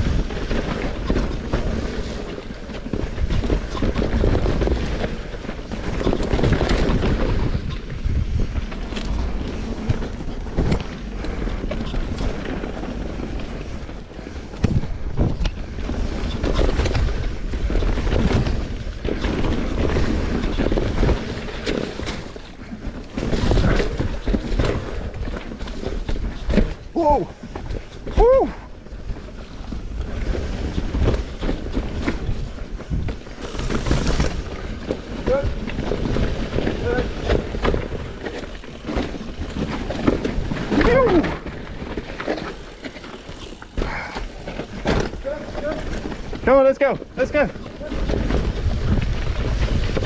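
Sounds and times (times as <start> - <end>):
wind buffeting microphone: 0.0 - 42.1
bike tyres rumbling over dirt: 0.0 - 50.0
sharp knocks from trail bumps: 0.0 - 50.0.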